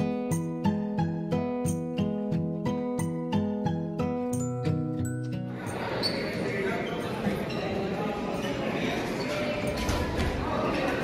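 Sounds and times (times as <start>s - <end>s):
plucked guitar-like music: 0.0s - 5.9s
crowd chatter: 5.0s - 11.0s.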